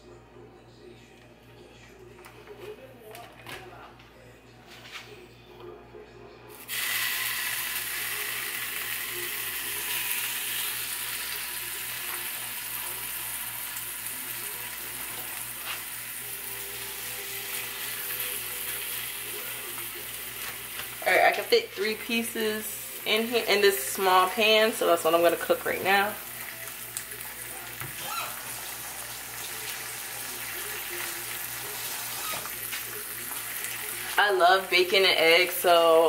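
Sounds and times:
bacon sizzling in frying pan: 6.6s - 36.0s.

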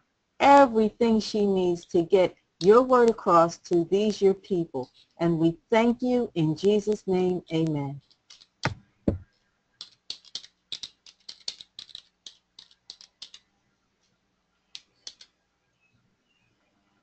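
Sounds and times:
computer keyboard typing: 8.0s - 8.5s, 9.8s - 13.4s, 14.7s - 15.3s.

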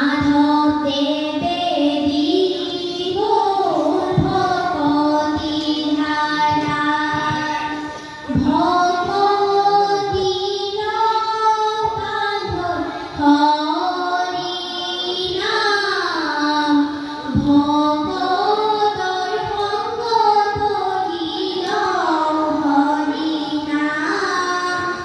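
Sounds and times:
children singing a chant: 0.0s - 25.0s.

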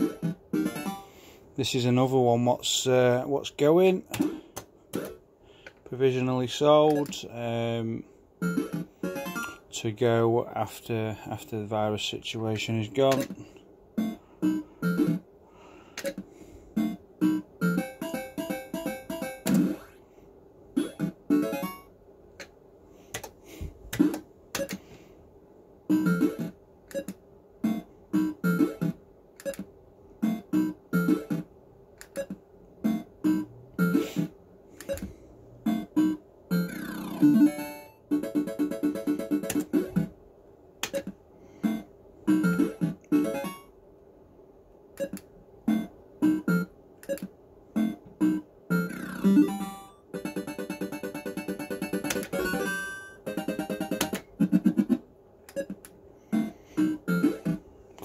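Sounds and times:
fruit machine bleeps and jingles: 56.4s - 57.6s.

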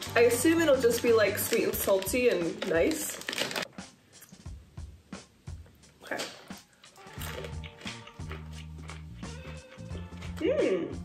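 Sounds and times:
plastic snack pouch crinkling: 0.0s - 3.7s, 6.2s - 9.9s
background music with bass line: 7.0s - 11.0s.

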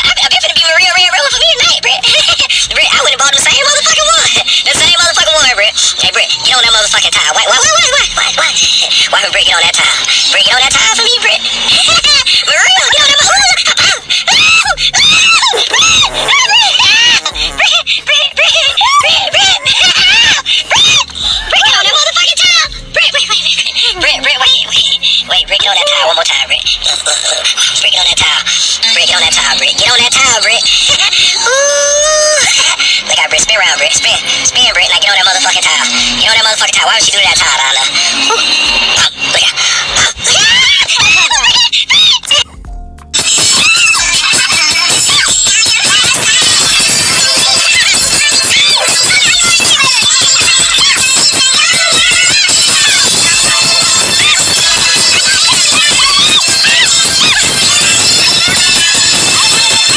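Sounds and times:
background music: 0.0s - 59.9s
high-pitched wordless vocalizing: 0.0s - 59.9s
man talking and laughing: 22.8s - 25.3s.

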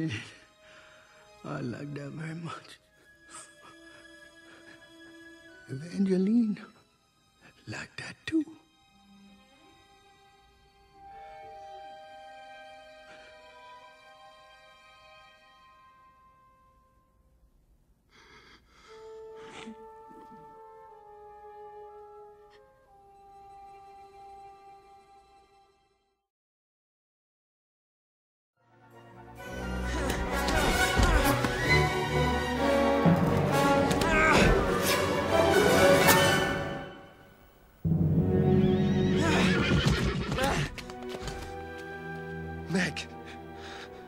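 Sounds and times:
orchestral film score: 0.0s - 17.0s, 18.8s - 25.9s, 28.6s - 44.0s
breathy sobbing gasps: 18.1s - 20.6s
cartoon horse whinnying: 38.6s - 40.8s.

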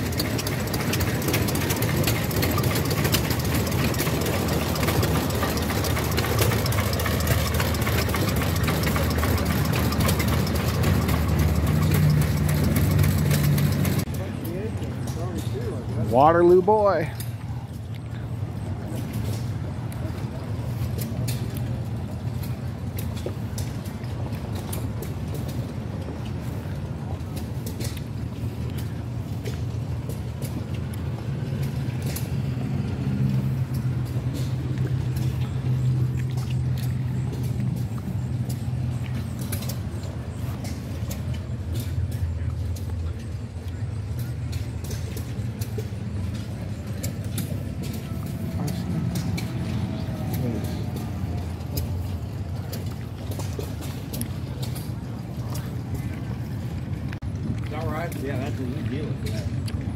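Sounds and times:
low engine hum: 0.0s - 59.9s
faint voices: 37.2s - 59.9s.

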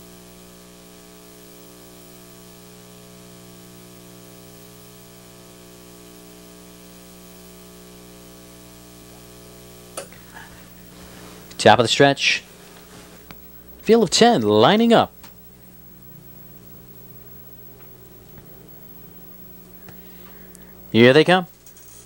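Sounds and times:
electrical hum with hiss: 0.0s - 22.0s.

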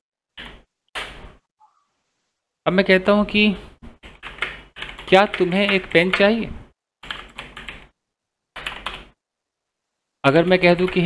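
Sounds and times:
computer keyboard typing: 4.0s - 6.3s, 7.0s - 7.9s, 8.6s - 9.2s, 10.4s - 11.0s.

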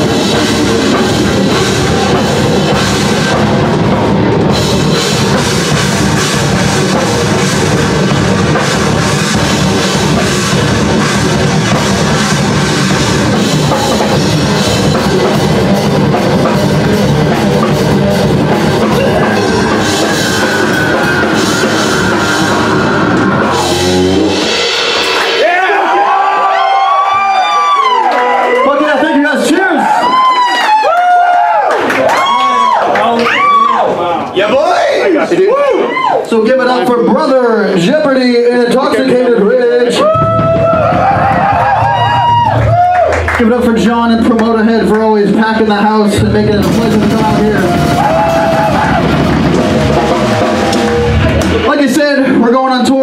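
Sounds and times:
live heavy metal band: 0.0s - 28.6s, 38.5s - 53.0s
crowd yelling and whooping: 6.6s - 37.7s, 39.7s - 43.5s, 46.6s - 52.5s.

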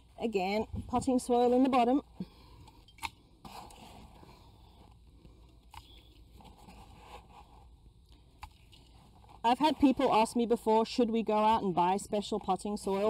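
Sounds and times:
soil scraping and rustling: 3.4s - 4.9s.

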